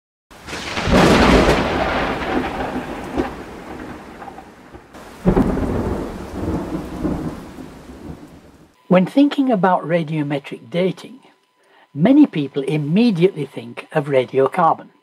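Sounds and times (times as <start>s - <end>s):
deep rumbling booms: 0.5s - 8.5s.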